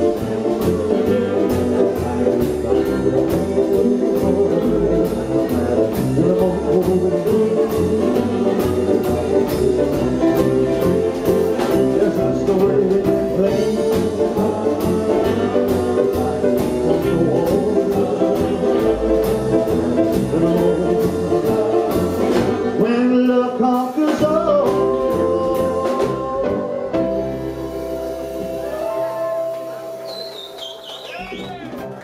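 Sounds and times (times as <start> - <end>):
rockabilly band playing live: 0.0 - 32.0.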